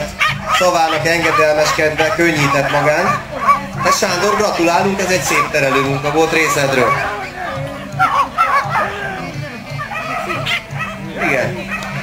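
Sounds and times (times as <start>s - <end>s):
crowd chatter: 0.0s - 12.0s
puppy barking in high yaps: 0.1s - 9.2s, 9.8s - 12.0s.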